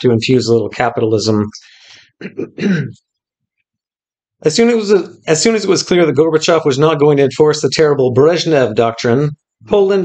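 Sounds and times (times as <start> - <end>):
man clearing his throat: 2.2 - 3.1.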